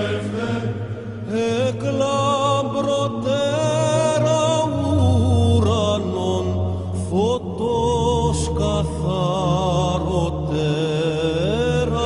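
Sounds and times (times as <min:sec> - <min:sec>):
held low vocal drone: 0:00.0 - 0:12.0.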